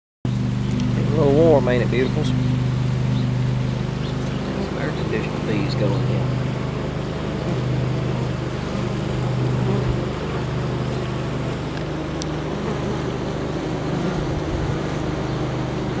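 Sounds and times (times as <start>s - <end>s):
bees buzzing: 0.3s - 16.0s.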